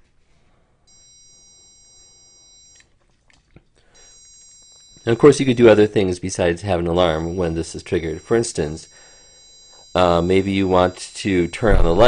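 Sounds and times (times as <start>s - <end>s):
high-pitched buzzer alarm tone: 0.9s - 2.8s, 3.9s - 12.0s.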